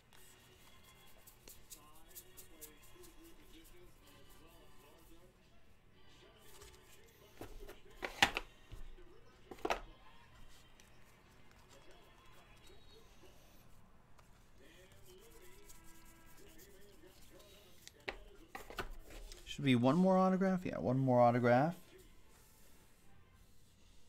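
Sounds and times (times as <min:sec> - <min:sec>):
faint music: 0:00.0 - 0:24.0.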